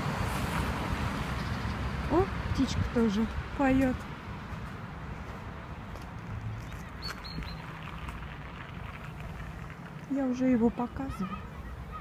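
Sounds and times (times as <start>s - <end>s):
songbird chirping: 6.4s - 8.0s.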